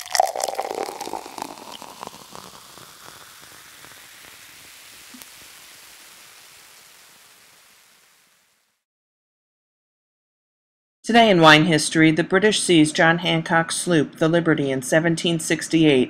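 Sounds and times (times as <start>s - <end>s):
fizzing hiss: 0.0s - 8.7s
sparkling wine pouring into glass: 0.0s - 8.7s.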